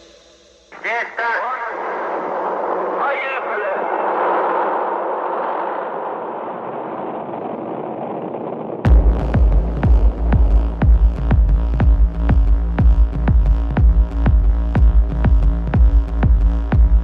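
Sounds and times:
rocket launch roar: 0:00.7 - 0:09.4
radio voice fragments: 0:00.8 - 0:02.1.

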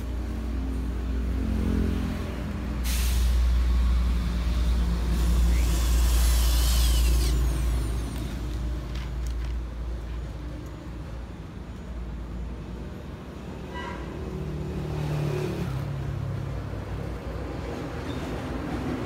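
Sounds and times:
cordless drill on steel frame: 0:04.5 - 0:08.7.

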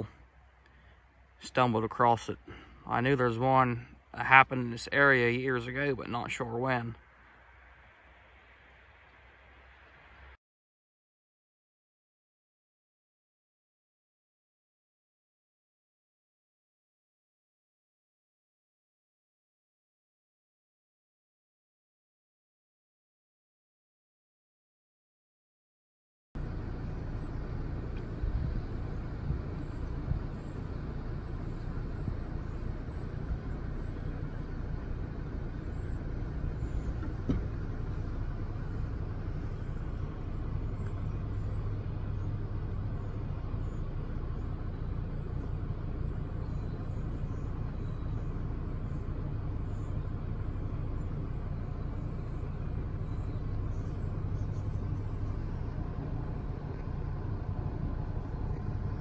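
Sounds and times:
low engine rumble: 0:00.0 - 0:10.4, 0:26.4 - 0:59.0.

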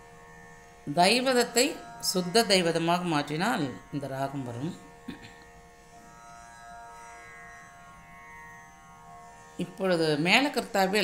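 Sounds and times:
faint drone accompaniment: 0:00.0 - 0:11.0.

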